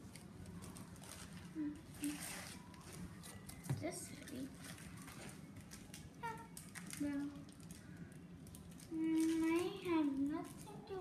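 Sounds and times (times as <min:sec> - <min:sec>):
rustling of packaging bags: 0:00.0 - 0:11.0.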